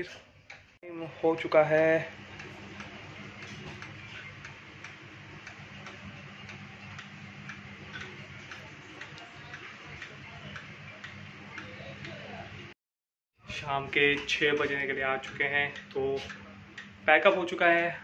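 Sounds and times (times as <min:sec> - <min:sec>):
steady low hum: 0:00.9 - 0:12.8, 0:13.4 - 0:18.0
light ticking: 0:02.3 - 0:12.2, 0:14.0 - 0:17.7.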